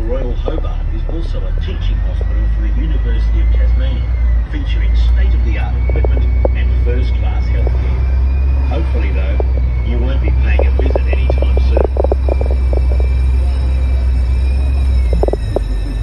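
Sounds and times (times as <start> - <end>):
bus engine rumble: 0.0 - 16.0
faint high whine: 0.0 - 16.0
people talking indistinctly: 0.0 - 16.0.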